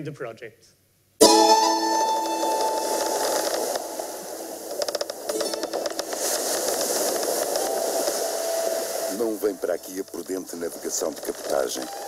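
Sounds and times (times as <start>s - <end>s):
ringing musical note: 1.2s - 3.4s, 5.3s - 6.2s
steady rushing hiss: 1.9s - 12.0s.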